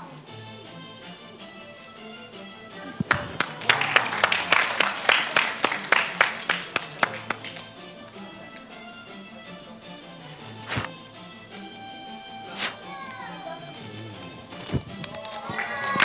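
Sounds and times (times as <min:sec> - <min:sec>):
background music: 0:00.0 - 0:16.0
audience clapping along: 0:03.0 - 0:07.8, 0:15.0 - 0:16.0.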